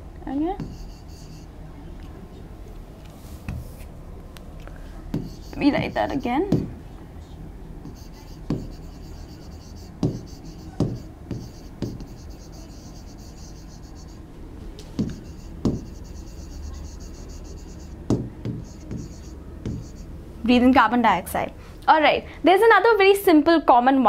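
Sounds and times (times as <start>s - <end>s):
stylus scratching on screen: 0.6s - 1.5s, 5.2s - 6.4s, 7.8s - 14.3s, 15.0s - 20.1s
stylus tapping on screen: 0.6s - 1.5s, 5.1s - 6.7s, 7.8s - 14.2s, 15.0s - 20.1s.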